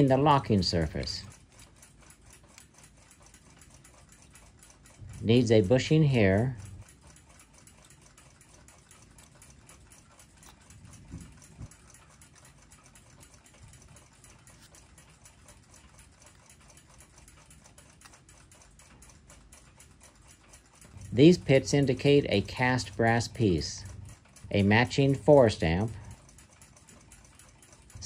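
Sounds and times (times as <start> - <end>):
clock ticking: 0.0 - 28.0
soft knocks of clock movement: 0.0 - 28.0.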